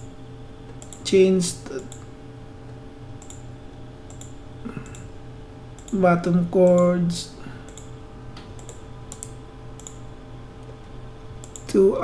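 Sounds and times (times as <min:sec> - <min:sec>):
computer mouse clicks: 0:00.0 - 0:01.1, 0:03.2 - 0:03.4, 0:04.1 - 0:05.1, 0:05.8 - 0:06.0, 0:07.7 - 0:10.0, 0:11.4 - 0:11.8
low steady hum: 0:00.0 - 0:12.0.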